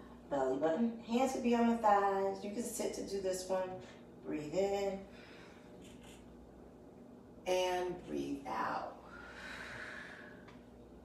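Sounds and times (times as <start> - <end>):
woman exhaling: 9.0 - 10.5.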